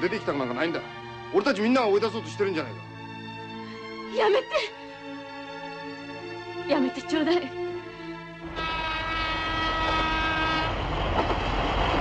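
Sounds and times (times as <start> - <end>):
train horn blast: 8.4 - 11.0
train rumble: 8.4 - 12.0.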